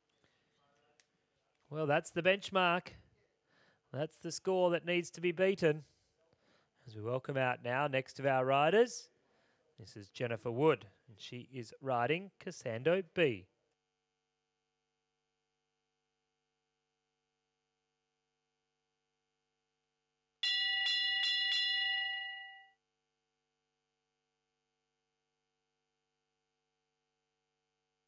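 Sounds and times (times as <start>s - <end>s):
start bell ringing: 20.4s - 22.8s.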